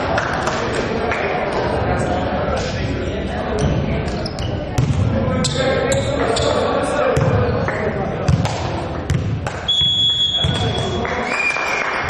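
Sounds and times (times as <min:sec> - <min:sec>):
players' voices and calls: 0:00.0 - 0:11.8
ball bouncing on hall floor: 0:03.6 - 0:06.5, 0:07.1 - 0:11.0
referee's whistle: 0:09.7 - 0:11.8.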